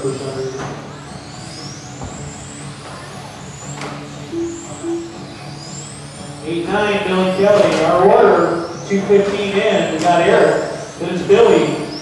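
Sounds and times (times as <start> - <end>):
electric rc cars whining: 0.0 - 12.0.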